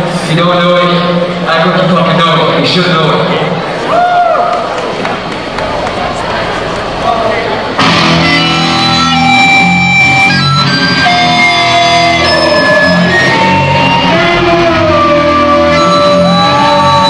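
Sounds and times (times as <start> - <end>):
crowd murmur: 3.2 - 17.0
electric guitars and bass chords: 6.1 - 17.0.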